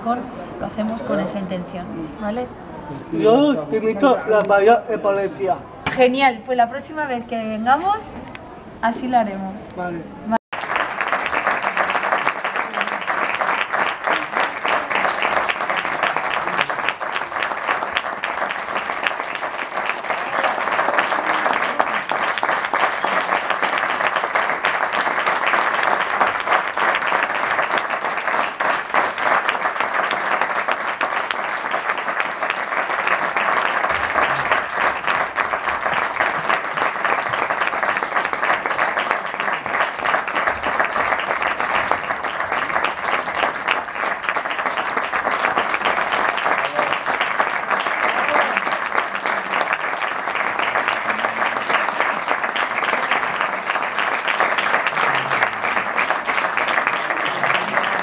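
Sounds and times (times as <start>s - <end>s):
audience applauding: 10.5s - 58.0s.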